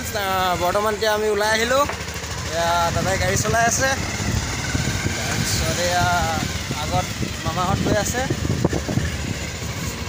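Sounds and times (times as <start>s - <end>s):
man talking: 0.0s - 4.0s, 5.2s - 8.4s
motorcycle engine rumble: 0.0s - 10.0s.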